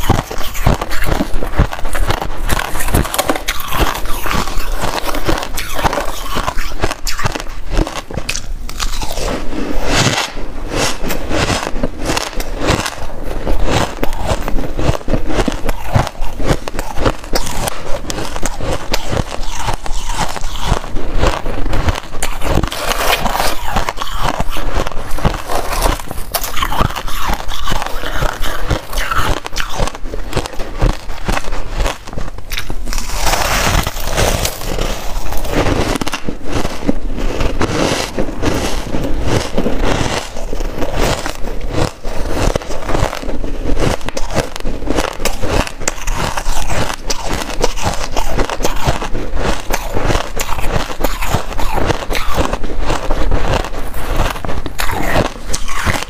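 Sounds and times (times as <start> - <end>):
ice being chewed: 0.0 - 56.0.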